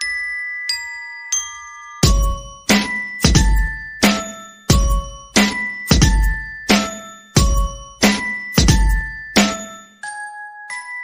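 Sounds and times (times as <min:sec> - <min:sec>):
bell-like struck notes: 0:00.0 - 0:11.0.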